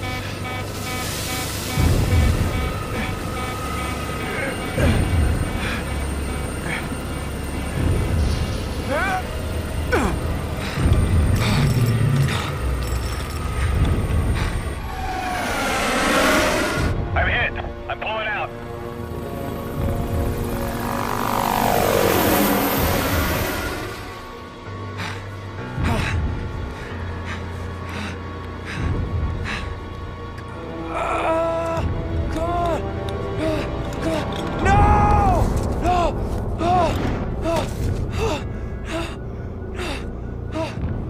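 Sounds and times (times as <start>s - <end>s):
falling whine: 0.1s - 25.0s
helicopter flying past: 14.1s - 24.9s
man panting and gasping: 24.9s - 29.9s, 35.9s - 41.0s.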